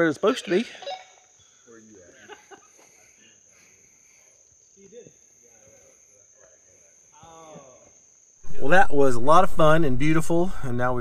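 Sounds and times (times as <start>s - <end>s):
high-pitched insect drone: 0.0s - 9.8s.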